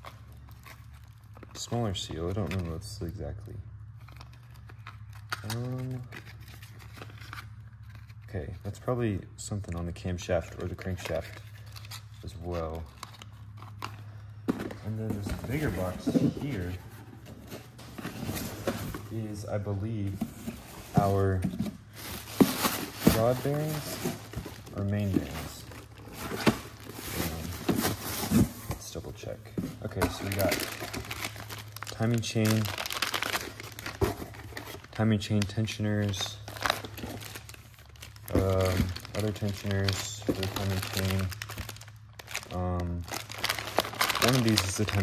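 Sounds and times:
plastic bags crinkling: 0:10.4 - 0:45.0
cardboard rustling and scraping: 0:14.5 - 0:31.6, 0:32.7 - 0:34.9
man speaking: 0:14.8 - 0:16.8, 0:19.0 - 0:20.3, 0:20.9 - 0:21.5, 0:23.0 - 0:24.1, 0:24.7 - 0:25.8, 0:28.7 - 0:30.8, 0:31.9 - 0:32.8, 0:38.3 - 0:41.3, 0:42.5 - 0:43.1, 0:44.2 - 0:45.0.

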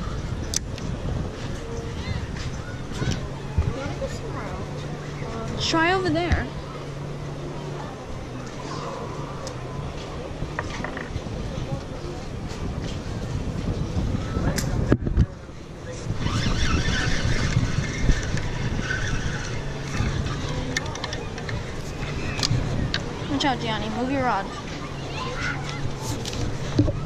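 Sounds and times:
wind rumbling on microphone: 0:00.0 - 0:27.0
camera rubbing against wooden railing: 0:25.6 - 0:27.0.

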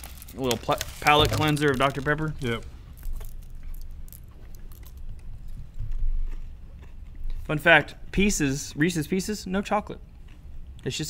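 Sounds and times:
hard candies clicking and rattling: 0:00.0 - 0:07.2.

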